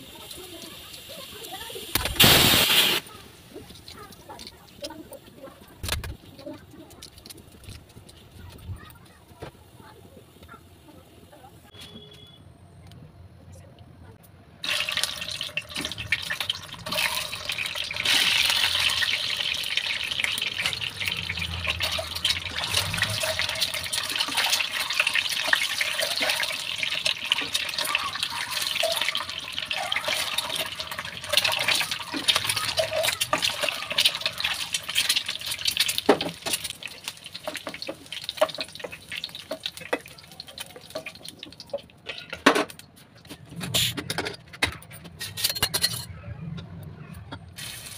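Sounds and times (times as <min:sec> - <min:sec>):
eggs sizzling in hot oil: 0:00.0 - 0:06.6, 0:14.6 - 0:42.4, 0:47.6 - 0:47.9.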